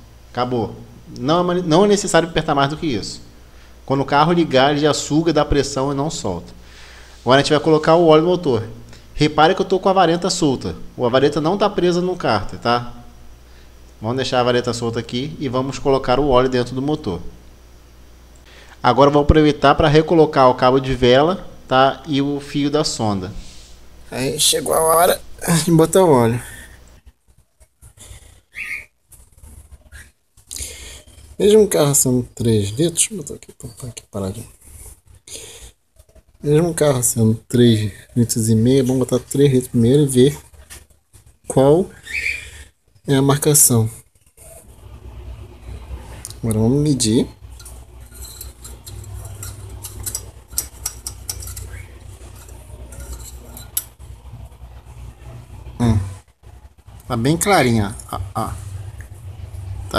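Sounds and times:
low steady rumble: 44.8s - 59.9s
metal dipstick clicks and scrapes: 47.6s - 54.0s.

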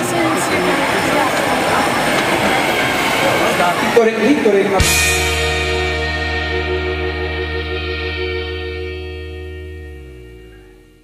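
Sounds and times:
background music held chord: 4.8s - 11.0s.

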